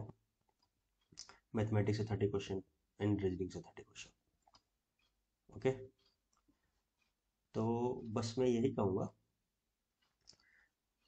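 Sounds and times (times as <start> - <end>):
man speaking: 1.5 - 4.2, 5.5 - 6.0, 7.5 - 9.2.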